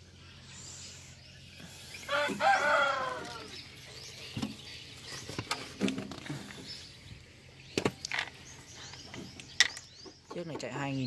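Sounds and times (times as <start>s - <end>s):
rooster crowing: 2.1s - 3.6s.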